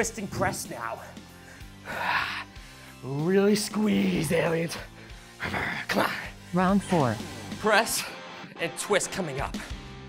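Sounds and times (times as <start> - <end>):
quiet background music: 0.0 - 10.0
man gasping breath: 1.3 - 3.0.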